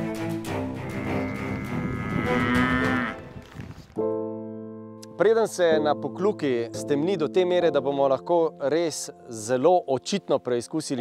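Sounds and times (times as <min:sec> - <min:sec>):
cow mooing: 0:00.8 - 0:03.3.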